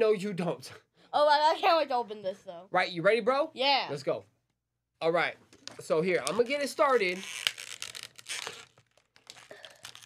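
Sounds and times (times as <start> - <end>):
plastic packaging tearing and crinkling: 6.2 - 10.0.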